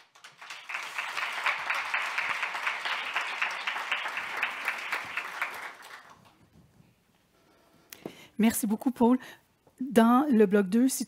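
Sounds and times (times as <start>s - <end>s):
audience applauding: 0.0s - 6.5s.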